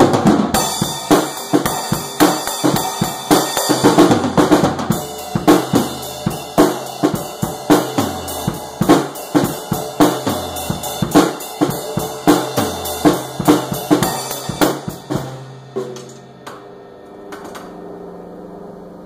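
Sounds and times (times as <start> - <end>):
snare and bass drum hits: 0.0 - 16.2.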